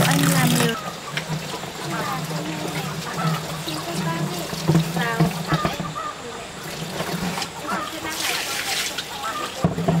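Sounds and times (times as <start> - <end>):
water splashing from bucket: 0.0 - 10.0.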